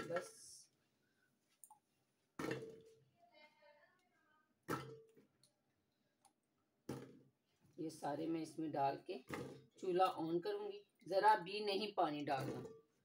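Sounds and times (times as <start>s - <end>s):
water chestnuts knocking in metal pot: 0.0s - 0.6s, 2.4s - 2.9s, 4.7s - 5.4s, 11.5s - 13.0s.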